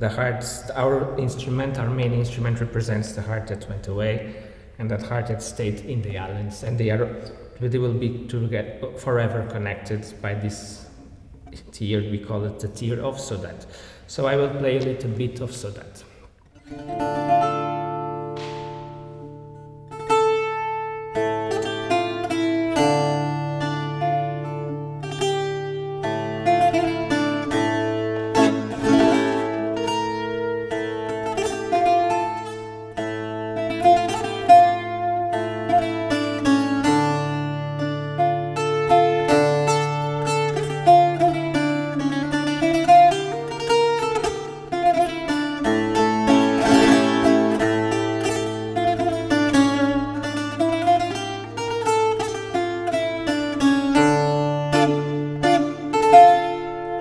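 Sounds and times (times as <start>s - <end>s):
plucked folk guitar melody: 16.0s - 57.0s
strummed guitar chords: 16.4s - 57.0s.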